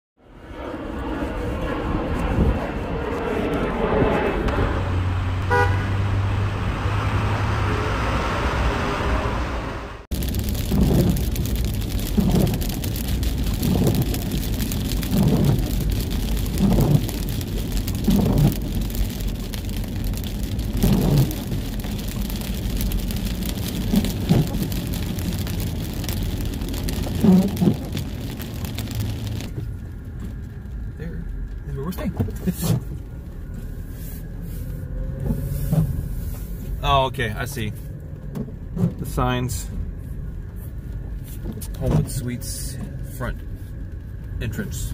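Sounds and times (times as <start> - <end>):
rain and wet road noise: 1.0 - 44.9
windshield wipers sweeping: 7.0 - 30.8, 31.5 - 36.8, 37.8 - 44.3.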